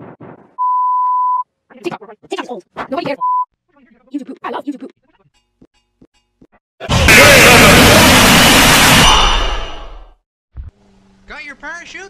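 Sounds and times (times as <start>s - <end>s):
censor bleep: 0.6s - 1.4s
stuttering looped voice fragment: 6.8s - 8.2s.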